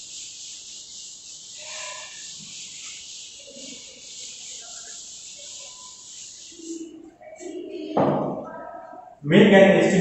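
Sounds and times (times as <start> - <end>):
chalkboard being wiped: 0.0 - 7.8.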